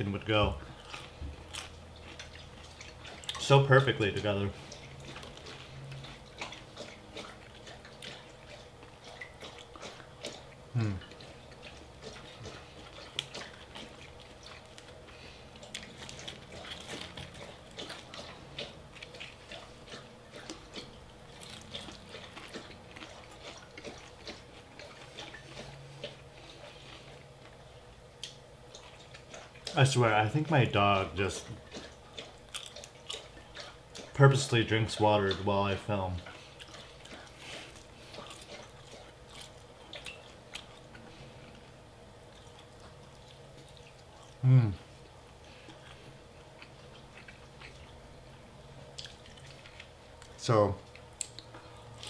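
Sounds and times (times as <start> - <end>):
dog lapping water: 0.0 - 27.3, 28.6 - 41.4
person humming: 10.7 - 11.1, 44.4 - 44.9.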